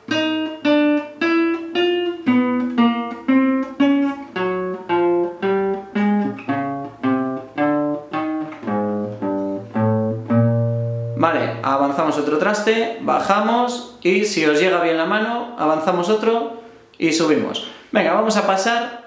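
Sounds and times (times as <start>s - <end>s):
classical guitar plucked notes: 0.0s - 12.2s.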